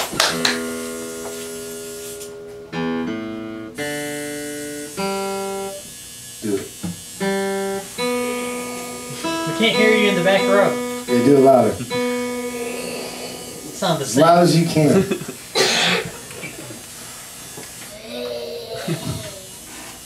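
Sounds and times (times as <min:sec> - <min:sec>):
acoustic guitar chords ringing: 0:00.0 - 0:05.8, 0:07.2 - 0:16.3
person speaking: 0:08.3 - 0:15.2.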